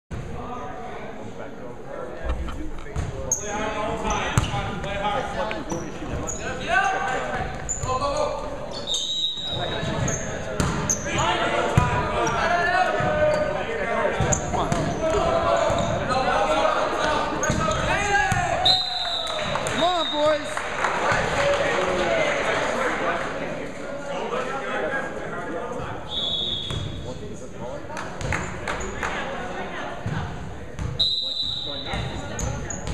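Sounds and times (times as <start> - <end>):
voices in hall: 0.1 - 32.9
ball bouncing on hardwood court: 2.9 - 3.2, 10.6 - 10.9
referee's whistle: 8.7 - 9.9, 18.6 - 20.5, 26.1 - 27.0, 31.0 - 32.2.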